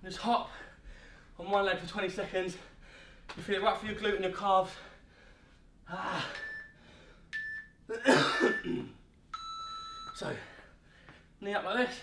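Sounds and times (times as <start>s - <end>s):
man coughing: 7.9s - 9.0s.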